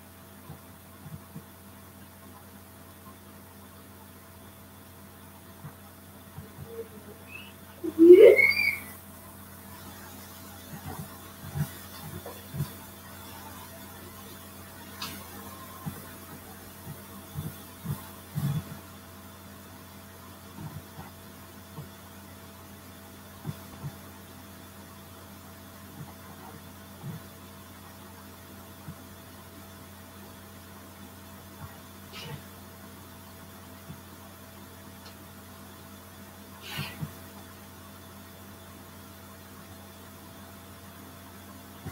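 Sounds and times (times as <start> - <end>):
low electrical hum: 0.0 - 41.9.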